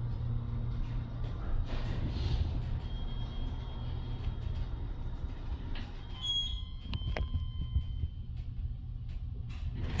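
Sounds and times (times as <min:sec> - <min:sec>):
elevator ride low rumble: 0:00.0 - 0:10.0.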